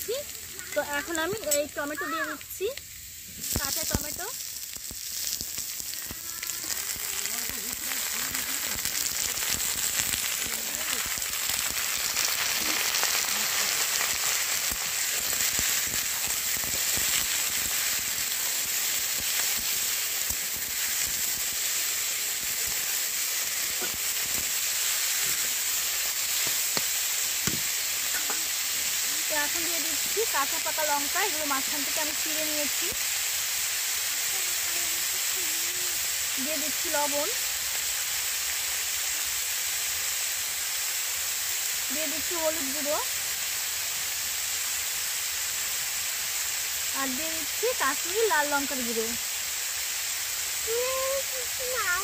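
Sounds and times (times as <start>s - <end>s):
vegetables sizzling in hot oil: 0.0s - 52.0s.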